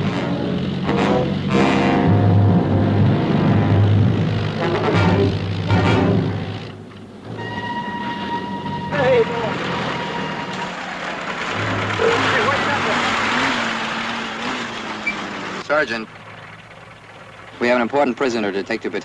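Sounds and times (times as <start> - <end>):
vehicle engine running: 0.0 - 7.4, 8.0 - 19.0.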